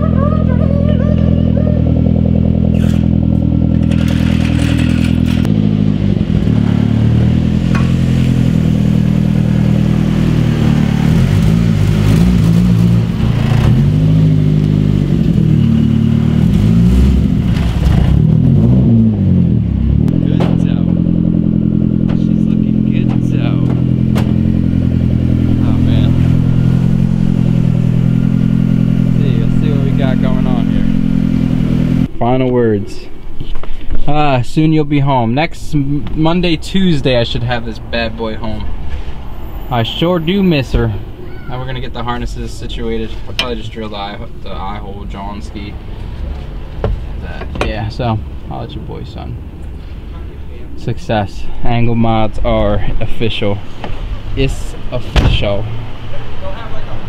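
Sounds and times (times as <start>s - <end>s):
car engine revving: 0.0s - 32.2s.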